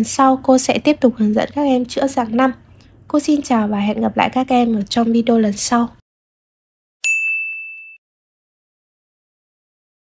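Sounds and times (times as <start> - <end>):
bell-like ding: 7.0 - 8.0.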